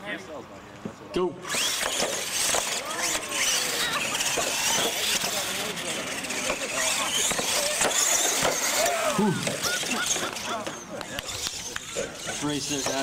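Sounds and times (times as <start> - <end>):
toy truck electric motors whining: 1.4 - 13.0.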